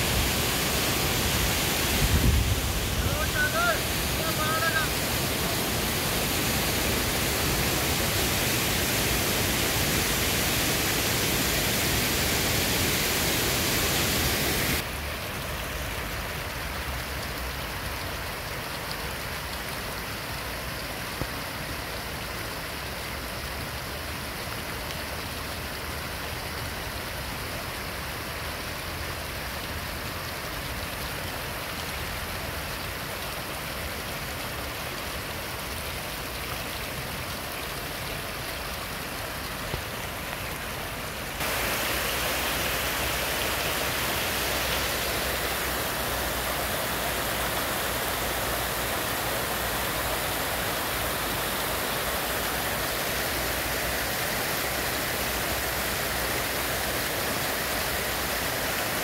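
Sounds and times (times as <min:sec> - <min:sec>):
stream cascading over rocks: 0:00.0 - 0:59.0
turbulent river rushing: 0:00.0 - 0:59.0.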